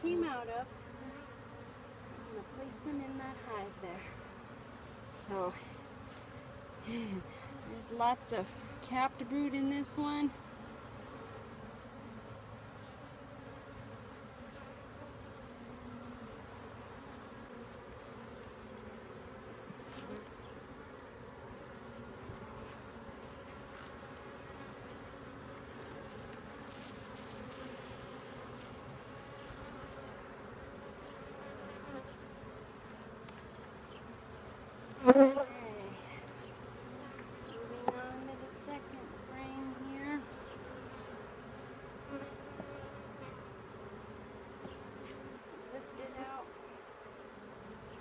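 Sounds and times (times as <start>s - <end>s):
honey bees buzzing: 0.0s - 48.0s.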